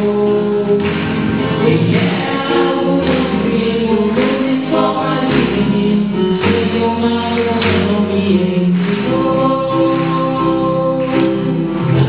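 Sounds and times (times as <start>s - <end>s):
worship song singing: 0.0s - 12.0s.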